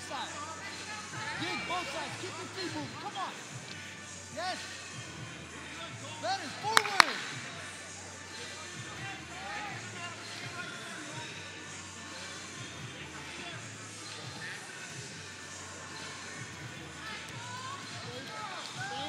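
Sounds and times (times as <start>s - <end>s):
faint background music: 0.0s - 19.0s.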